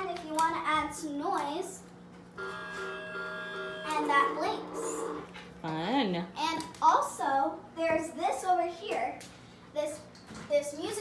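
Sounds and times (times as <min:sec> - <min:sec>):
toy train electronic chord: 0:02.4 - 0:05.2.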